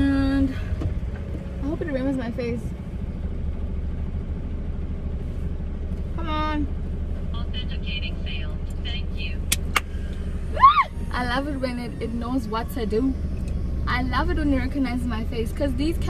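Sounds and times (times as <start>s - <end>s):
engine and road rumble: 0.0s - 16.0s.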